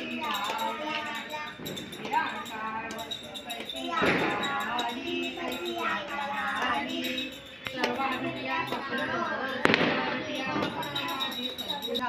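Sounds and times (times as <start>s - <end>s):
people's voices: 0.0s - 12.0s
firecracker bang: 9.6s - 10.8s.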